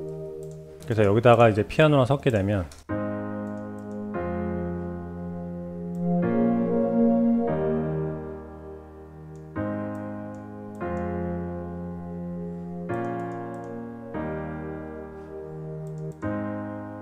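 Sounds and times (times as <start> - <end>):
soft synth pad: 0.0 - 0.9, 3.0 - 16.3
piano playing slow chords: 0.0 - 1.3, 2.9 - 17.0.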